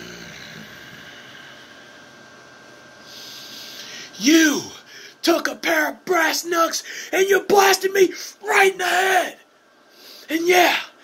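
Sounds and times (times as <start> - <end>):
high-pitched electrical whine: 0.0 - 9.4
room hiss: 0.0 - 11.0.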